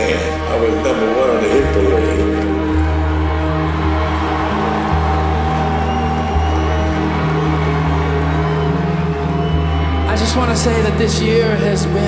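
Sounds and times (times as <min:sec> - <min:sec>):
ambient drone band music: 0:00.0 - 0:12.0.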